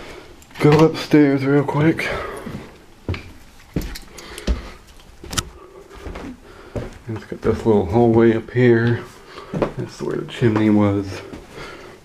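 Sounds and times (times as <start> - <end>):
footsteps on carpeted stairs: 1.9 - 11.8.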